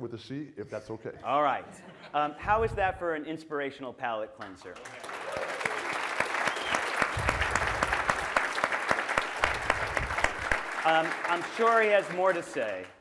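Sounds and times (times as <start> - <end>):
audience applauding: 4.8 - 13.0.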